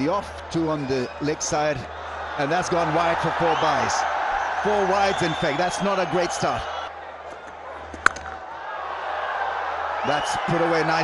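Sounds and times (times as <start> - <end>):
cricket bat striking ball: 7.3 - 8.4.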